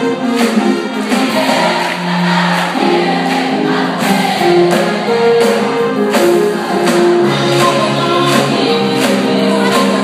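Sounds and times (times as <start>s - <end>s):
choir singing: 1.1s - 10.0s.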